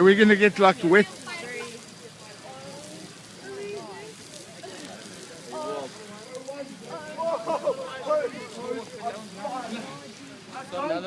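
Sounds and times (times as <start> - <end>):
fire crackling: 0.0 - 11.0
people's voices: 0.0 - 11.0.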